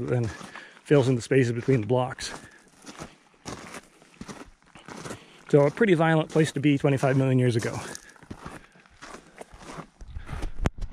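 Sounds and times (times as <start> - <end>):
footsteps crunching on gravel: 0.0 - 10.6.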